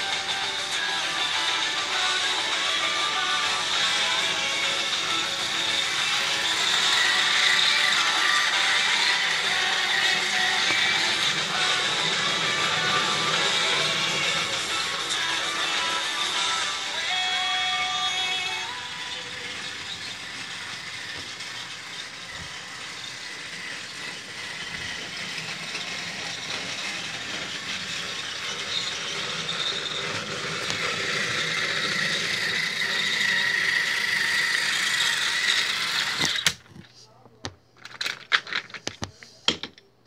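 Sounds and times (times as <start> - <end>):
toy train whirring and rattling: 0.0 - 37.0, 37.8 - 39.8
clicks and knocks of toys handled: 36.2 - 39.9.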